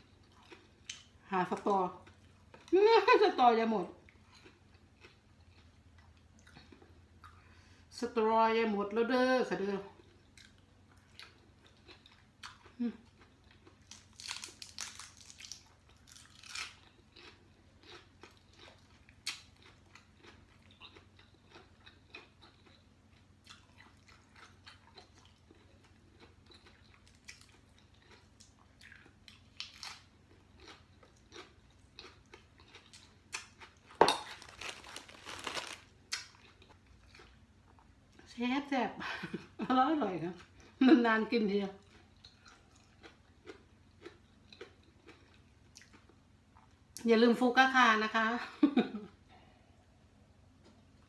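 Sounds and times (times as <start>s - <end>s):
person chewing food: 0.0s - 2.8s, 4.0s - 7.7s, 9.9s - 38.3s, 41.8s - 47.0s, 49.3s - 51.0s.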